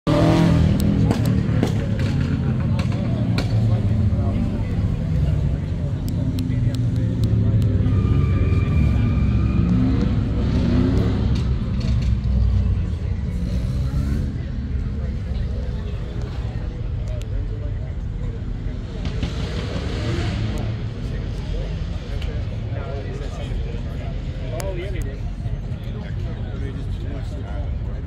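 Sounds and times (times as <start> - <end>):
car engine rumbling: 0.0 - 28.0
people talking: 0.4 - 28.0.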